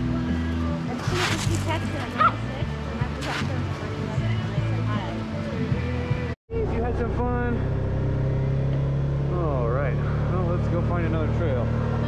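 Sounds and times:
background music: 0:00.0 - 0:07.7
dog yipping: 0:02.2 - 0:02.4.

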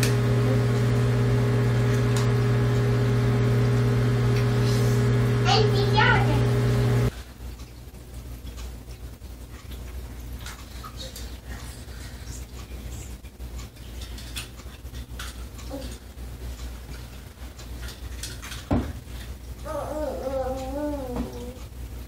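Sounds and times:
steady low hum: 0:00.0 - 0:07.4.

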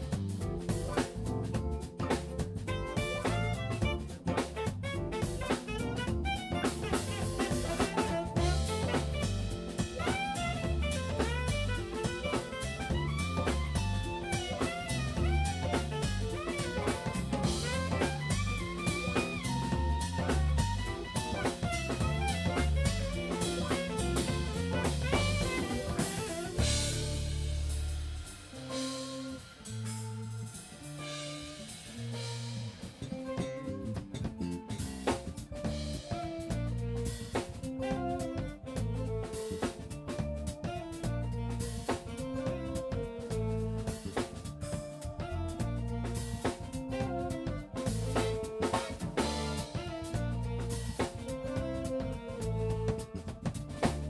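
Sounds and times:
bass notes and cymbals: 0:00.0 - 0:54.0
jazz fusion band playing: 0:00.0 - 0:54.0
bending saxophone lead: 0:02.0 - 0:34.8, 0:35.4 - 0:54.0.

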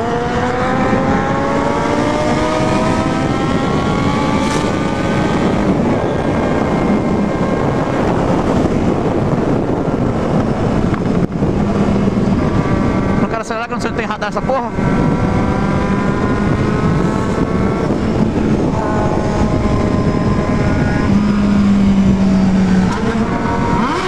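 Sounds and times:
motorcycle engine accelerating: 0:00.0 - 0:24.0
wind rush on microphone: 0:00.0 - 0:24.0.

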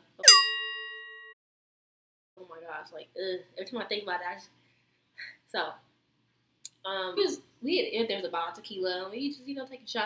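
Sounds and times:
bell-like ringing tone: 0:00.2 - 0:01.4.

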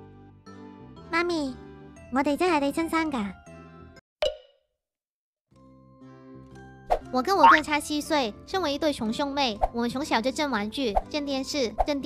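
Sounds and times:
soft background music: 0:05.6 - 0:12.0.

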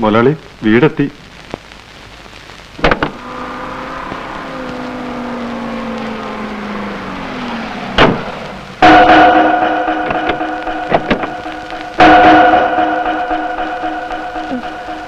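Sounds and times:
car door slamming: 0:02.8 - 0:03.2, 0:07.6 - 0:08.4
low hum sliding down: 0:03.1 - 0:15.0
sustained music chord: 0:03.2 - 0:15.0.

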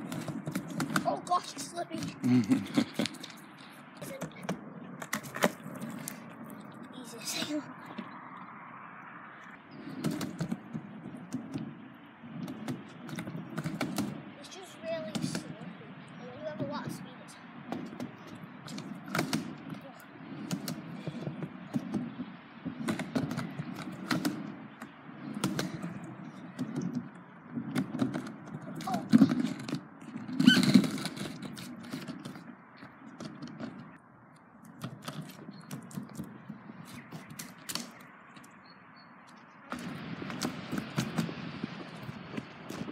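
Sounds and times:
skateboard wheels rolling on concrete: 0:00.0 - 0:42.9
skateboard clacks and knocks: 0:12.4 - 0:14.2, 0:22.7 - 0:24.6, 0:25.2 - 0:33.9.

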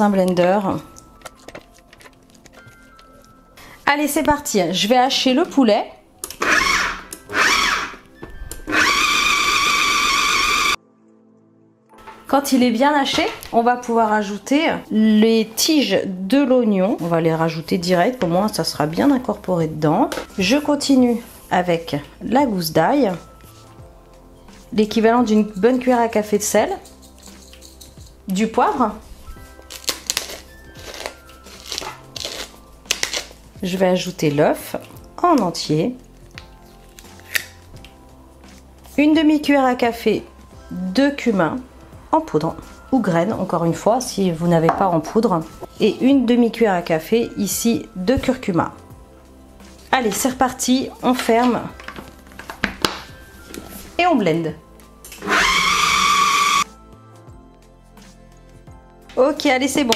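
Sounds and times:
food processor whining: 0:06.4 - 0:08.0, 0:08.7 - 0:10.8, 0:55.2 - 0:56.6
pepper mill grinding peppercorns: 0:26.6 - 0:28.3, 0:29.6 - 0:33.4, 0:55.2 - 0:56.6.

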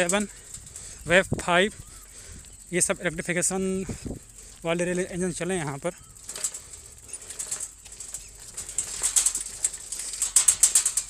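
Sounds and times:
bicycle rattling over bumpy dirt: 0:00.0 - 0:11.0.

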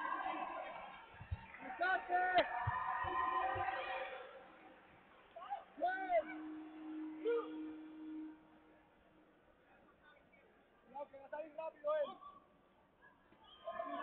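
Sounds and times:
people shouting excited calls: 0:05.4 - 0:08.2.

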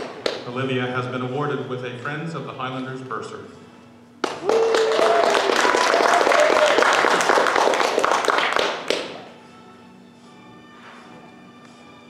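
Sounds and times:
crowd clapping: 0:00.0 - 0:00.4, 0:04.2 - 0:09.3
person whooping: 0:04.4 - 0:06.9.

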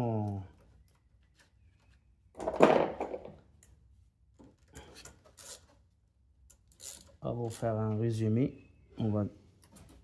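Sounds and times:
wrench clicking and scraping: 0:04.8 - 0:05.8, 0:06.4 - 0:07.6.

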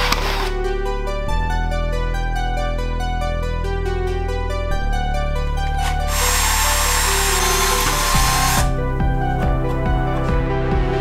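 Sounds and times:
background music: 0:00.0 - 0:11.0
electric drill drilling plastic: 0:05.8 - 0:08.7.

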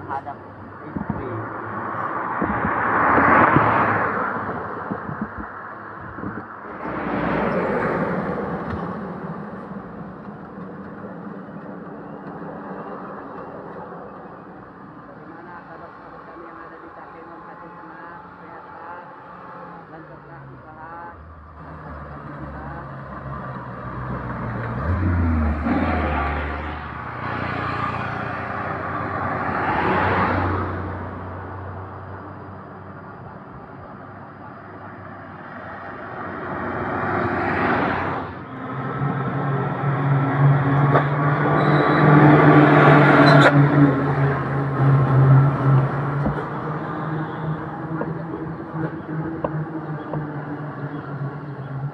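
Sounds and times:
trucks and cars passing: 0:00.0 - 0:51.9.

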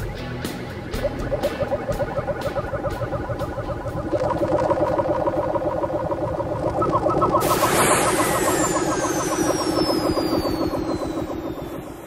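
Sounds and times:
rapidly pulsing motor-like effect: 0:00.0 - 0:12.0
thin falling whistle: 0:00.7 - 0:12.0.

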